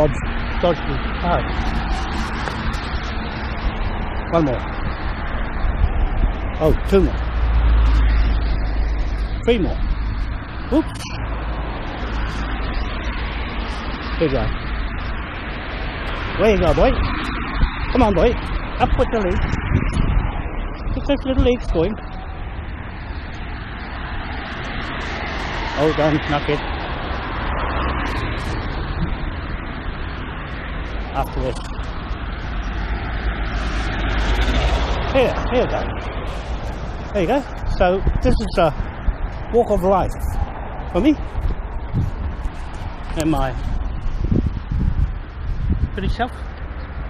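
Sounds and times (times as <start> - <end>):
cars passing: 0.0 - 47.0
wind buffeting microphone: 0.0 - 47.0.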